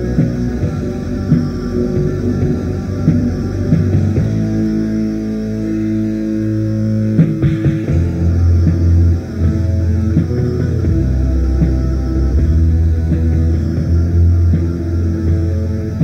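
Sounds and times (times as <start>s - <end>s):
distorted black metal music: 0.0s - 16.0s.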